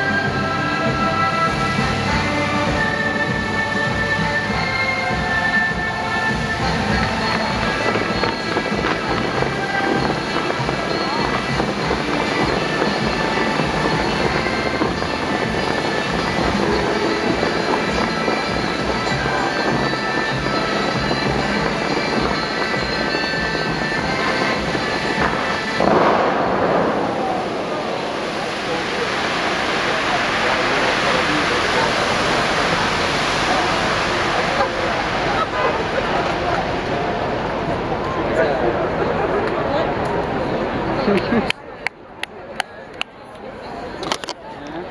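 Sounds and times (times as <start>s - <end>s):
hiss of falling water and spray: 0.0s - 37.7s
music over outdoor loudspeakers: 0.0s - 39.8s
fountain jets booming: 0.0s - 44.9s.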